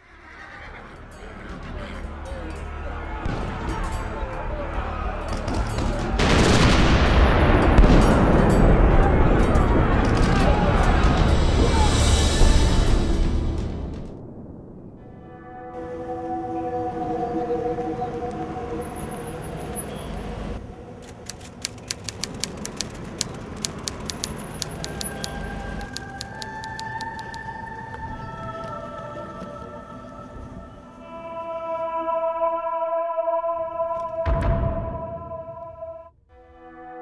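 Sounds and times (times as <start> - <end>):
eerie music of long notes: 0.7 - 37.0
sharp irregular clicks: 21.0 - 27.5
low thud: 34.3 - 35.2.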